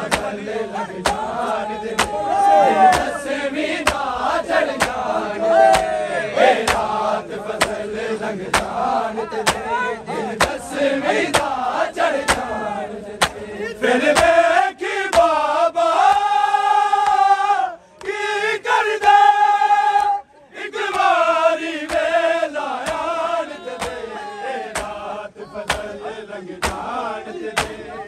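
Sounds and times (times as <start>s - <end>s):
hands slapping chests in unison: 0.0s - 28.0s
men chanting together: 0.0s - 28.0s.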